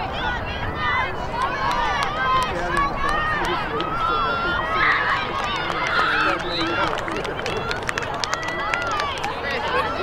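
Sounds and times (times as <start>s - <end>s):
girls calling and shouting: 0.0s - 6.4s, 7.7s - 10.0s.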